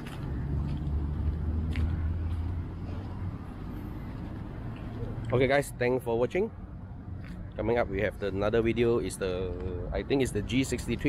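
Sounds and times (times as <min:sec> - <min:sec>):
vehicle engine rumbling: 0:00.0 - 0:11.0.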